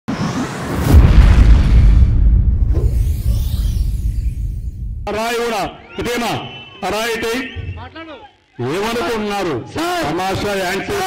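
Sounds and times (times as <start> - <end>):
deep cinematic boom: 0.6 - 5.2.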